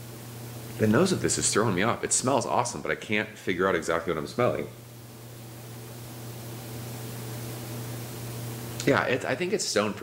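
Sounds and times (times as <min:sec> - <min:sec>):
low electrical hum: 0:00.0 - 0:10.0
room noise hiss: 0:00.0 - 0:10.0.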